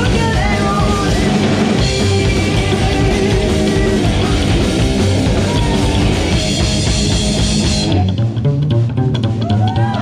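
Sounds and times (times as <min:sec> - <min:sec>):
drums: 0:00.0 - 0:10.0
electric guitar: 0:00.0 - 0:10.0
upright double bass: 0:00.0 - 0:10.0.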